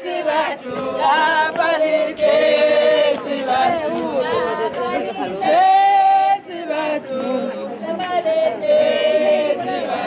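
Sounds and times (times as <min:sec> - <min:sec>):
women singing together: 0:00.0 - 0:10.0.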